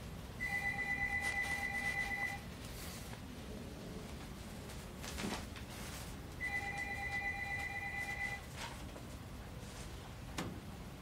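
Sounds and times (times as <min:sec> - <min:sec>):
two-tone electronic beep: 0:00.4 - 0:02.4.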